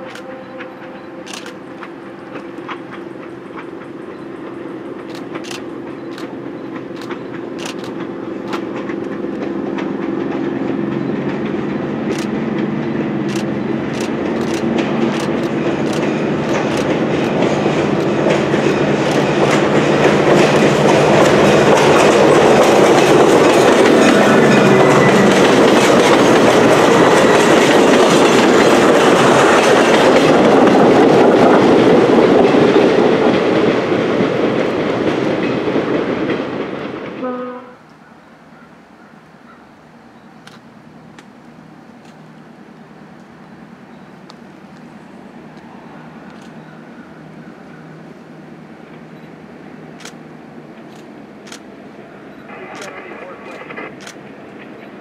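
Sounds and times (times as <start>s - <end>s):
wheels clicking over rail joints: 0.0s - 37.2s
train wheels rushing on rail: 0.0s - 37.3s, 40.4s - 55.0s
train engine drone: 0.0s - 55.0s.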